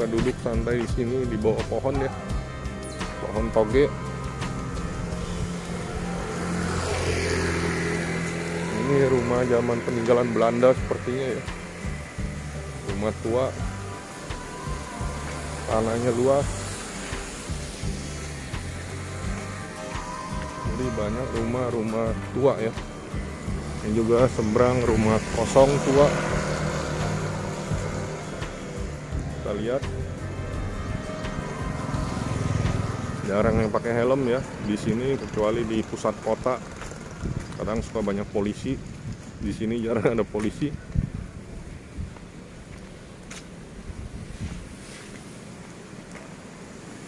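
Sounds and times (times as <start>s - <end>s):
motor vehicle engine on road: 0.0s - 47.0s.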